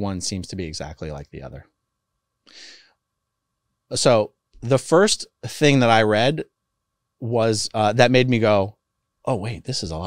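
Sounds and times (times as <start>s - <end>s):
man speaking: 0.0s - 1.7s, 3.9s - 6.5s, 7.2s - 8.7s, 9.3s - 10.0s
short breath: 2.4s - 3.0s.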